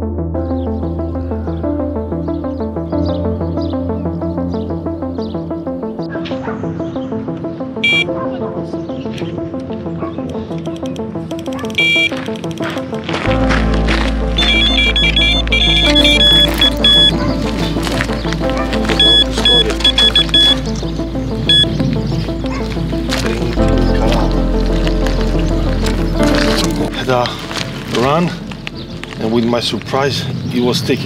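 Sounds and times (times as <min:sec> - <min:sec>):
background music: 0:00.0 - 0:31.0
bite alarm beeps: 0:07.8 - 0:08.1, 0:11.8 - 0:12.2, 0:14.4 - 0:17.3, 0:18.9 - 0:20.8, 0:21.5 - 0:21.8.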